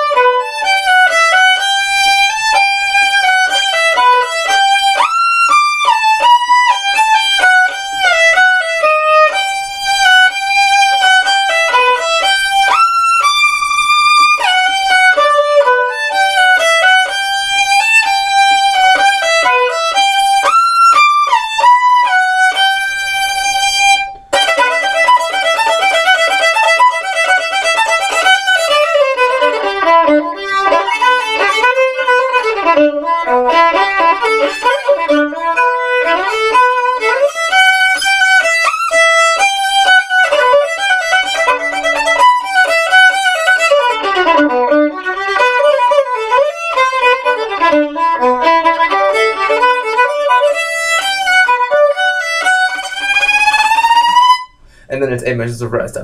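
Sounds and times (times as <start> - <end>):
bowed violin: 0.0 - 56.0.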